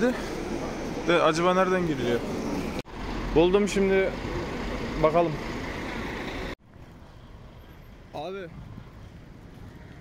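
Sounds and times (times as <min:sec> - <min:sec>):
coach engines running: 0:00.0 - 0:06.6
outdoor street background: 0:00.0 - 0:10.0.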